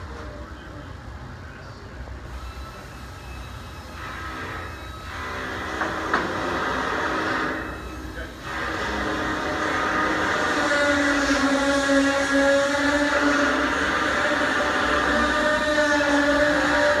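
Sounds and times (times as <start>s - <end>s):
workshop machinery drone: 0.0s - 17.0s.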